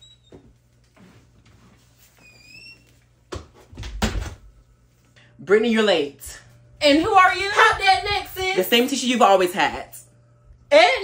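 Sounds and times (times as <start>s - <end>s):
door closing thud: 3.3s - 4.4s.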